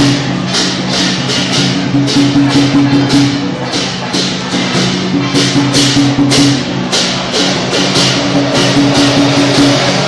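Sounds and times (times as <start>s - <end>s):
cymbal clashes: 0.0s - 10.0s
drums: 0.0s - 10.0s.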